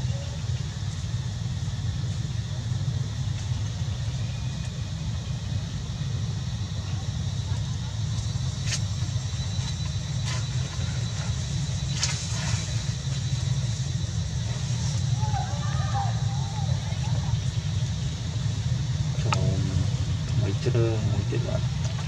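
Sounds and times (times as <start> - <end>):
steady low rumble: 0.0 - 22.0.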